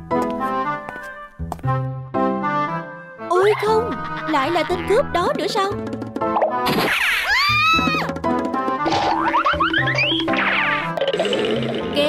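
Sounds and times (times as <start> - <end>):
playful background music: 0.0 - 12.0.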